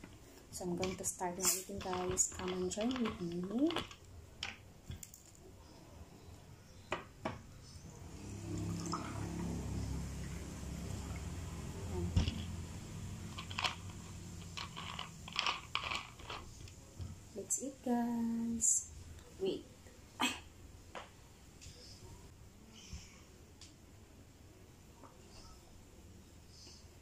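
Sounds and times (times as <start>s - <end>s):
soda pouring into glass of ice: 8.2s - 11.4s.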